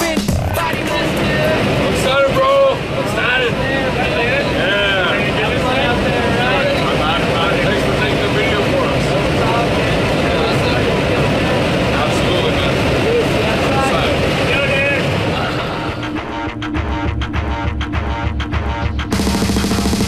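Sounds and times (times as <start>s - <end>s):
airflow inside cabin: 0.4s - 17.6s
airplane engine drone: 0.4s - 20.0s.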